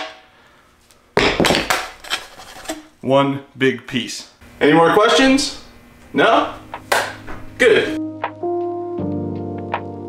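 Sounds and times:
scraping: 1.2s - 3.0s.

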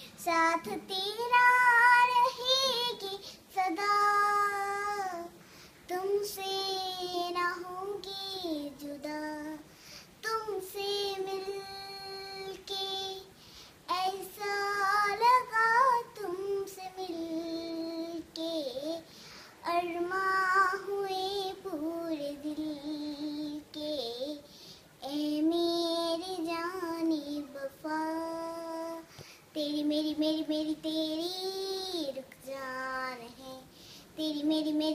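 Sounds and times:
child singing unaccompanied: 0.0s - 34.9s.

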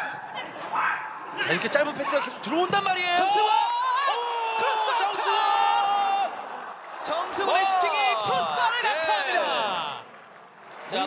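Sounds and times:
commentators exclaiming loudly: 0.6s - 10.0s.

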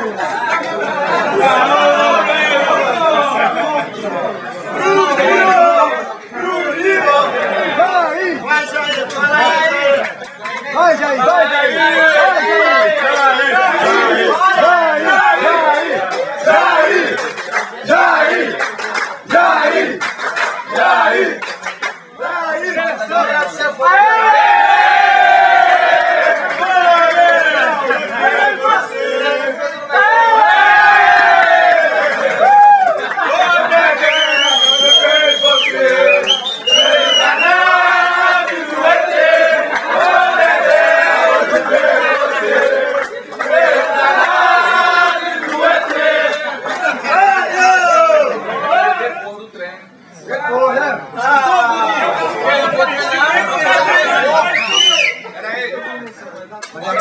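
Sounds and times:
men chanting and cheering: 0.0s - 21.5s, 22.2s - 49.3s.

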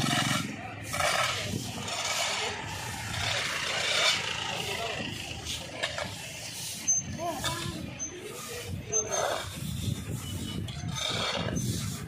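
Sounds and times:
brooms sweeping paved road: 0.0s - 12.0s.

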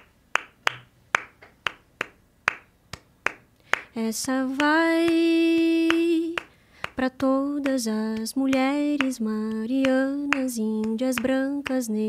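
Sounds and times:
hand claps in steady rhythm: 0.0s - 11.9s.

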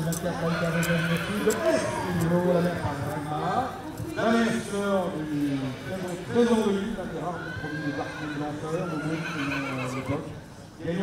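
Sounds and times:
horse whinnying: 0.5s - 2.2s, 7.3s - 10.2s.

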